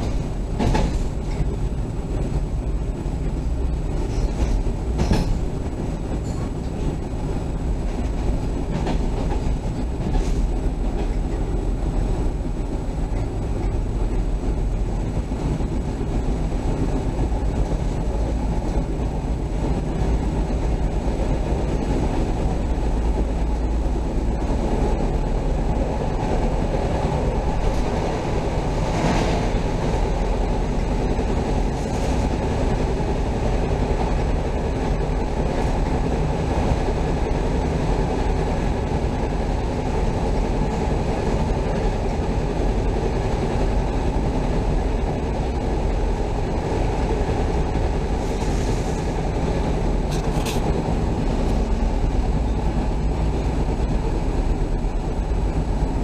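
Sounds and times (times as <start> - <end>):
train rumbling on rails: 0.0 - 56.0.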